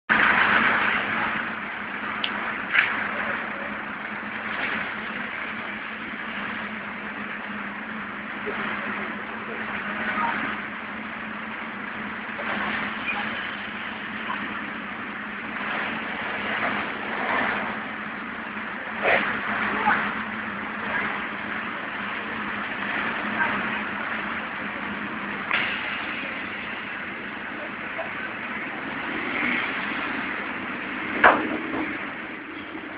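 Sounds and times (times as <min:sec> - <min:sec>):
street traffic: 0:00.0 - 0:32.9
engine running: 0:00.1 - 0:32.9.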